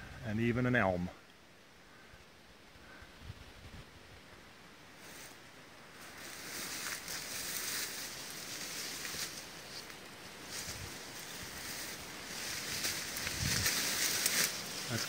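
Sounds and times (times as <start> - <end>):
leaves and brush rustling: 1.2 - 15.0
wind noise: 2.8 - 4.4, 10.3 - 15.0.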